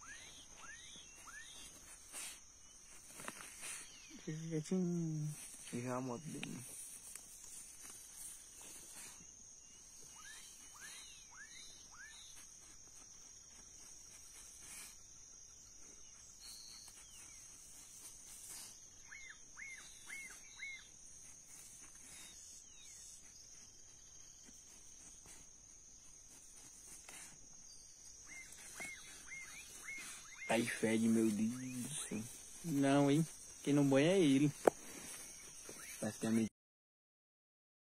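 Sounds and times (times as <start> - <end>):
high-pitched insect trill: 0.0 - 36.5.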